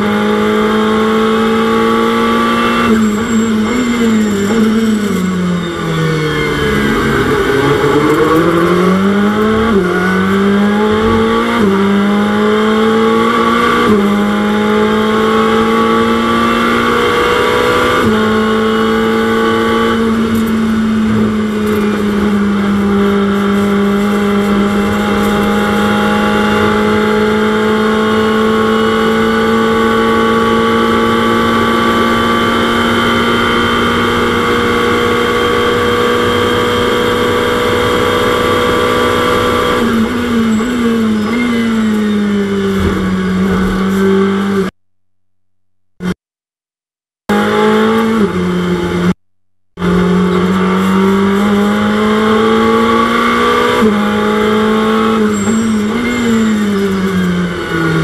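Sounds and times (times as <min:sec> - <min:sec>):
racing engine at full throttle: 0:00.0 - 0:44.8, 0:47.3 - 0:49.2, 0:49.8 - 0:58.0
engine downshifts under braking: 0:00.2 - 0:44.7.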